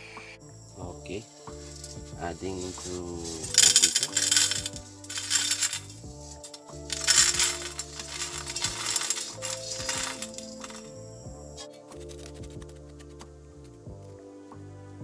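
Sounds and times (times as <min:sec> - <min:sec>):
metal pins clinking into glass beaker: 0:03.4 - 0:11.0.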